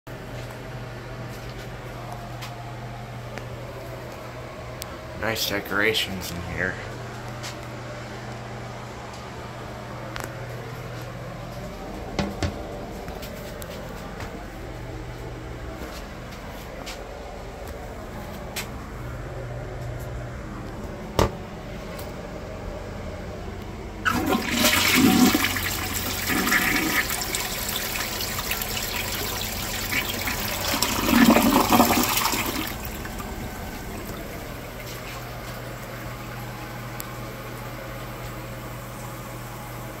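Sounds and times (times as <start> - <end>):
toilet flush click: 24.0 - 36.0
water rushing into toilet bowl: 24.0 - 36.5
toilet refilling hiss: 24.1 - 36.2.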